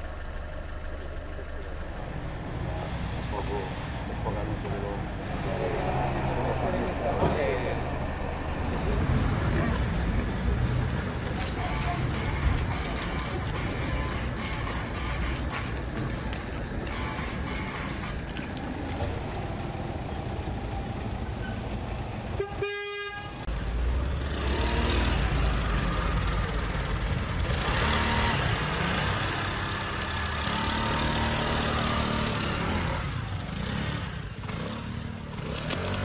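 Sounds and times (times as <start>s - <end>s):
car engine rumbling: 0.0s - 22.5s
car horn toot: 22.3s - 23.4s.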